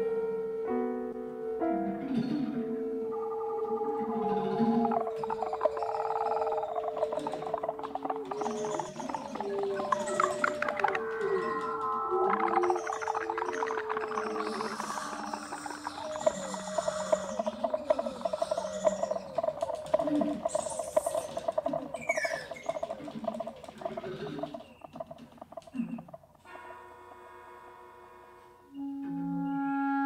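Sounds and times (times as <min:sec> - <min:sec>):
bird-like and whale-like calls: 0:01.9 - 0:26.6.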